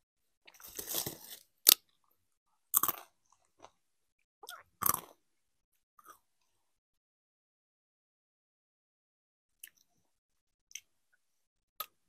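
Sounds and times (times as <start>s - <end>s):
tortilla chips crunching while chewed: 0.5s - 1.8s.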